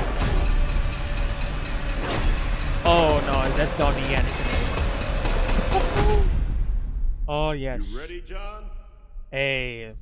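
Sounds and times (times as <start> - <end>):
bass-heavy trailer score rumble: 0.0 - 10.0.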